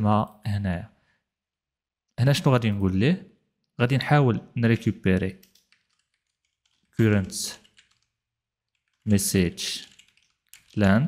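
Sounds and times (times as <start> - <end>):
man speaking: 0.0 - 1.0, 2.2 - 5.4, 7.0 - 7.6, 9.1 - 9.9, 10.8 - 11.0
faint keyboard typing: 4.8 - 11.0.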